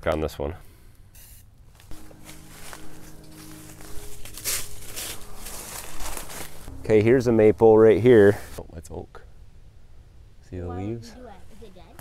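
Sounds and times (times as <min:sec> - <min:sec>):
spray can hissing: 0:01.2 - 0:01.4
footsteps in dry leaves: 0:01.6 - 0:07.0.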